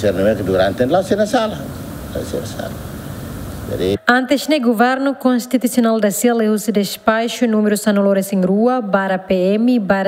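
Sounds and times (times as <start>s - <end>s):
low office room hum: 0.0s - 10.0s.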